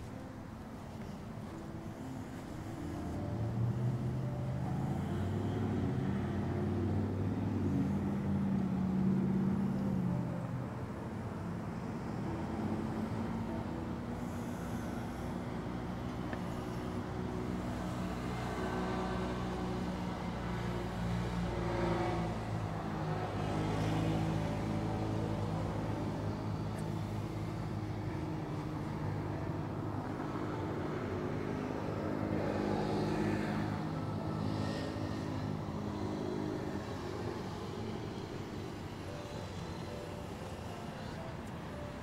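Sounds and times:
road traffic: 0:00.0 - 0:42.0.

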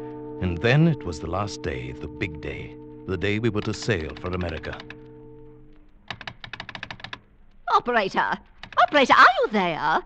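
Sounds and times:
held music chord: 0:00.0 - 0:05.8
rapid telephone clicks: 0:03.5 - 0:05.1, 0:05.7 - 0:09.3.

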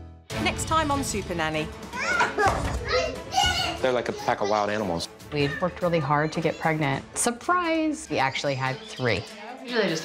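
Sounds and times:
children laughing and shouting: 0:01.9 - 0:07.0
adult speaking: 0:03.7 - 0:05.2.

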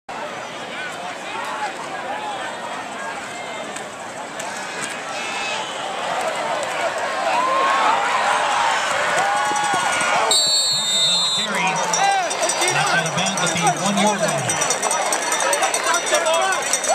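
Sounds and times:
crowd yelling and cheering: 0:00.1 - 0:16.9
referee's whistle: 0:10.3 - 0:12.0.

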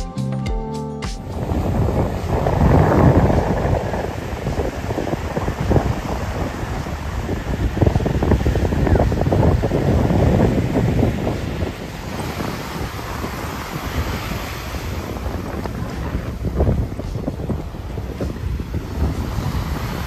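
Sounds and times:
wind buffeting microphone: 0:01.2 - 0:20.0
small waves breaking on sand: 0:01.4 - 0:20.0.

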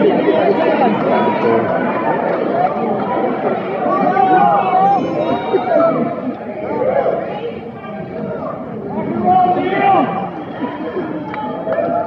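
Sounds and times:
audience chatter: 0:00.0 - 0:12.0.

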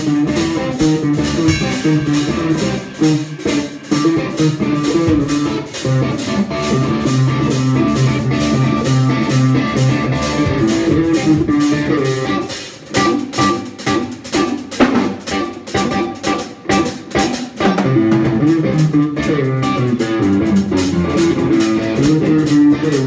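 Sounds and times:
electric guitar through amplifier: 0:00.0 - 0:14.4
bass guitar: 0:00.0 - 0:23.0
drum kit cymbal beat: 0:00.0 - 0:23.0.

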